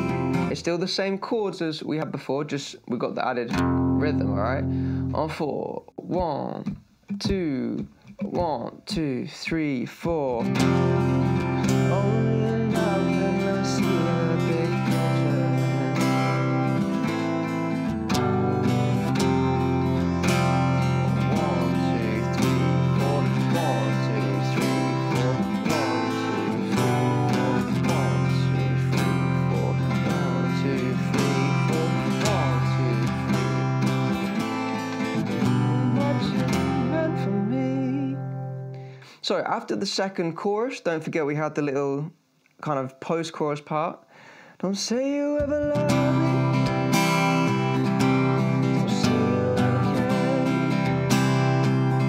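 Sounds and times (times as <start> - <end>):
acoustic guitar strumming: 0.0 - 0.8, 3.0 - 39.2, 45.0 - 52.0.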